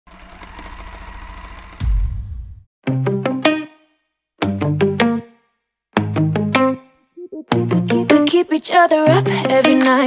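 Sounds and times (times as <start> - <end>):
fast mechanical clicking and whirring: 0.1 - 1.9
deep boom: 1.7 - 2.7.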